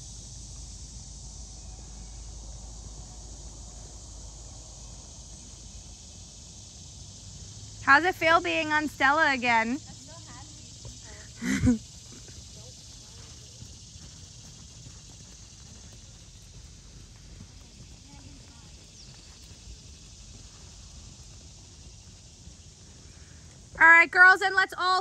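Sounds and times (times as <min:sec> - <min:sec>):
steady high-pitched hiss: 0:00.0 - 0:25.0
horse hoofbeats on sand: 0:09.8 - 0:23.8.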